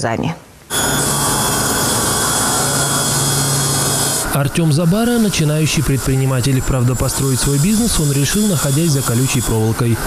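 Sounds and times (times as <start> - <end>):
circular saw blade whine: 0.7 - 10.0
low motor hum: 0.7 - 10.0.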